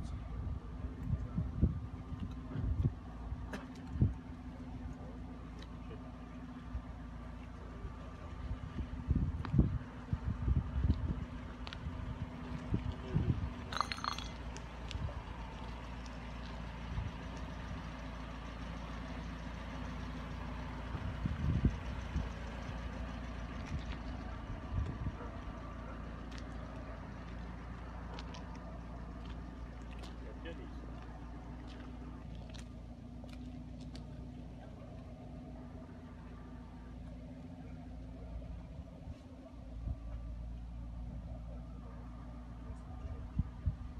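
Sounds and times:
vehicles idling: 0.0 - 43.9.

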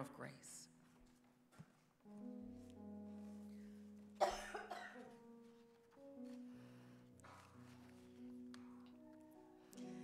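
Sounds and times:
soft keyboard chords: 0.7 - 10.0
person coughing: 4.2 - 5.1.

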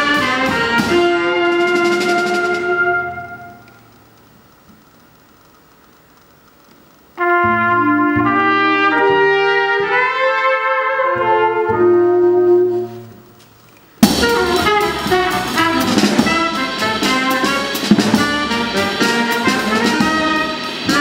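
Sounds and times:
jazz band playing loudly: 0.0 - 4.0, 7.2 - 13.4, 14.0 - 21.0
trumpet and saxophone: 0.0 - 4.0, 7.2 - 21.0
drums and cymbals: 0.0 - 4.1, 14.0 - 21.0
double bass: 7.2 - 13.4, 14.0 - 21.0.

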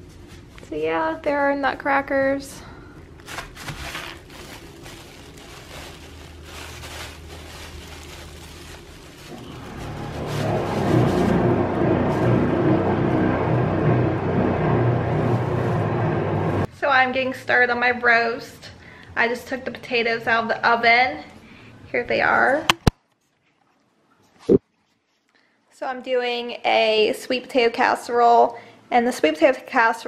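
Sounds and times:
plastic bag and paper crinkling: 3.1 - 11.6
background music: 9.3 - 16.7.

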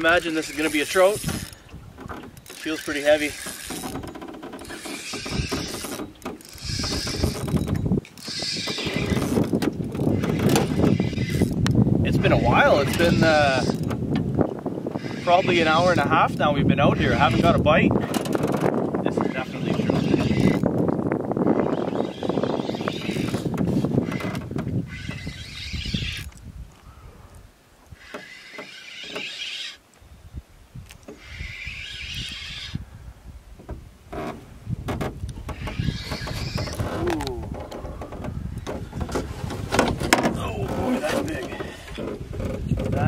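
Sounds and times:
wind rumbling on microphone: 0.0 - 29.4, 30.0 - 43.0
spinning reel cranking: 0.1 - 1.6, 2.4 - 11.6, 28.0 - 29.8, 31.2 - 32.8
person speaking: 36.9 - 37.7, 40.3 - 41.8.

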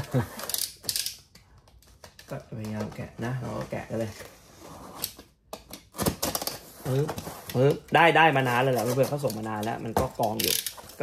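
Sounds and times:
cardboard box scraping and crackling: 6.3 - 11.0.

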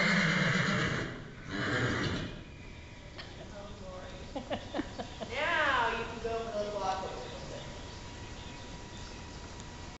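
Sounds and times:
horse neighing: 0.0 - 2.4.

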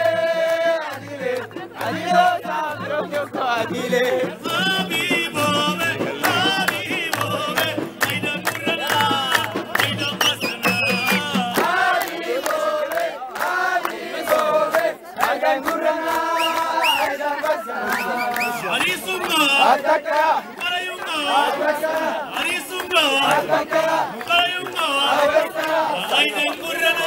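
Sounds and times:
low drum beat: 0.0 - 12.0
group of voices singing: 0.0 - 27.0
hands clapping: 0.0 - 27.0.

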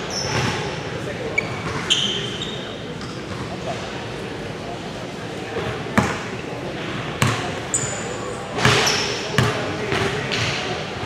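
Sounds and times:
sneaker squeaks: 0.0 - 3.8, 7.2 - 10.2
voices chattering: 0.0 - 11.0
basketball bouncing on hardwood: 9.4 - 10.4.

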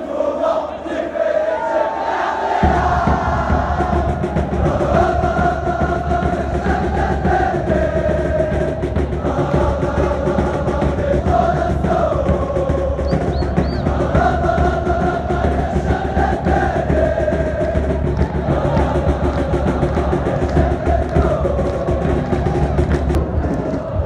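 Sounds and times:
crowd chanting in unison: 0.0 - 24.0
steady drumming: 2.4 - 24.0.

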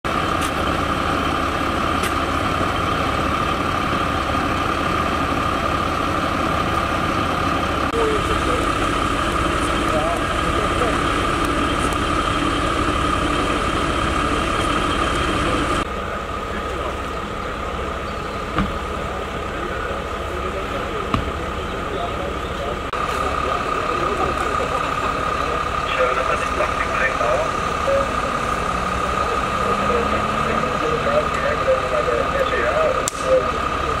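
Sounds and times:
diesel engine idling: 0.0 - 34.0
high whine: 0.1 - 34.0
indistinct voices: 0.1 - 34.0.

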